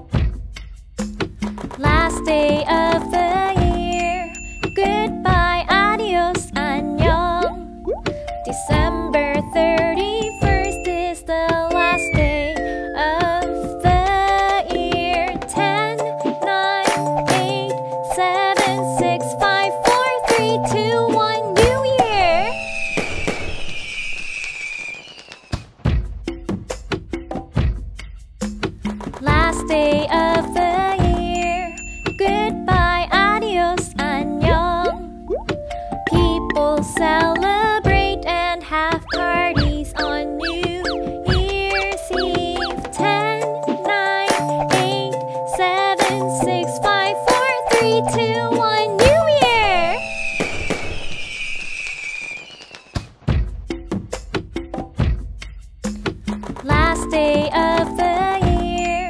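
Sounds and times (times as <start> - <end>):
falling firework whistle: 11.8 - 12.6, 22.3 - 25.8, 49.7 - 53.3
firework bursting with crackling hiss: 22.6 - 25.8, 50.0 - 53.2.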